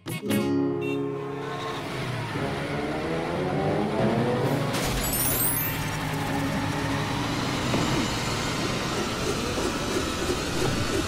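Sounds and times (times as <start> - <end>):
cartoon truck engine running: 1.2 - 11.0.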